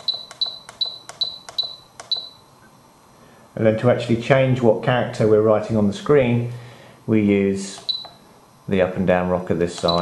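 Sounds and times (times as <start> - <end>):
transmitter beeping: 0.0 - 2.6, 7.8 - 8.2, 9.8 - 10.0.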